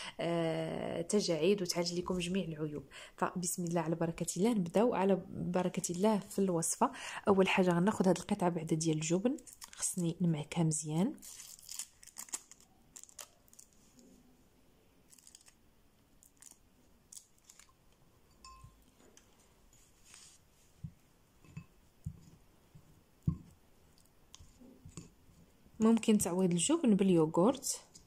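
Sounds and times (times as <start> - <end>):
foil wrapper crinkling: 9.4 - 10.0, 11.2 - 14.0, 15.1 - 15.6, 16.2 - 17.8.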